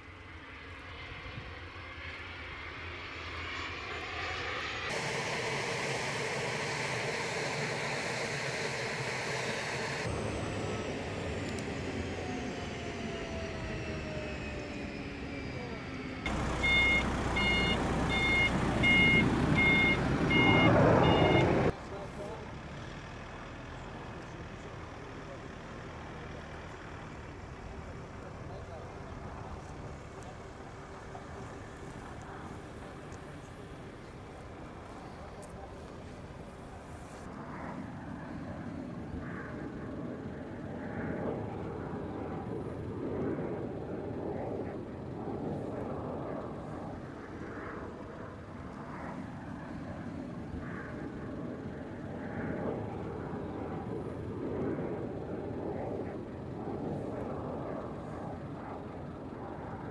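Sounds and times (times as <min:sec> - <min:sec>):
jet engine roar and whine: 0:00.0 - 0:59.9
vehicle reversing beeper: 0:05.0 - 0:21.7.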